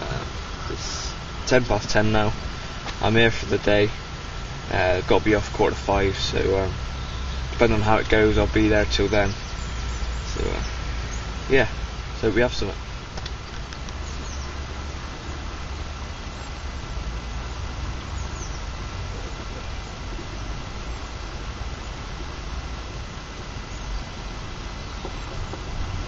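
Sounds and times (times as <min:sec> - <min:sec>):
hiss: 0:00.0 - 0:01.3
wind on microphone: 0:19.0 - 0:26.0.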